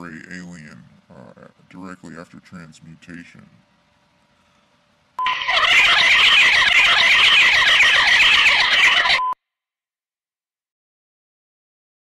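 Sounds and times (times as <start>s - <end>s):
electronic warbling chirps: 5.2s - 9.4s.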